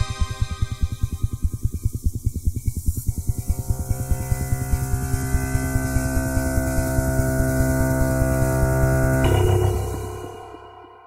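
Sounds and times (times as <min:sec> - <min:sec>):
fast pulsing bass: 0:00.0 - 0:10.8
sustained synthesizer chord: 0:00.0 - 0:11.0.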